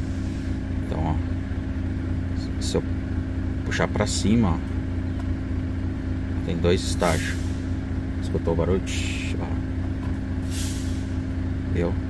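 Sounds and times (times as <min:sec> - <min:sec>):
diesel engine humming: 0:00.0 - 0:12.0
compressed air hiss: 0:07.1 - 0:07.7, 0:10.4 - 0:11.2.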